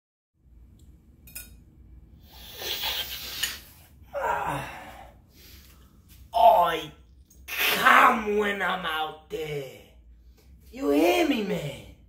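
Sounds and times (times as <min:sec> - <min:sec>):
man sniffing: 0:02.2 - 0:03.8
man groaning breath: 0:04.1 - 0:05.2.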